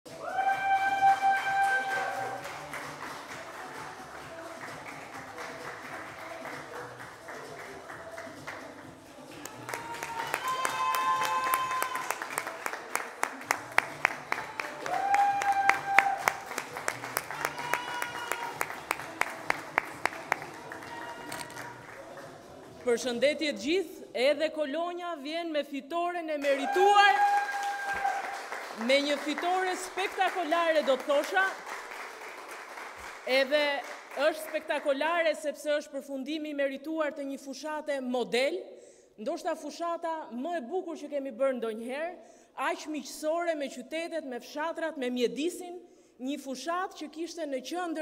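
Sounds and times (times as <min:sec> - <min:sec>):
people clapping: 0:00.0 - 0:22.9, 0:26.4 - 0:35.0.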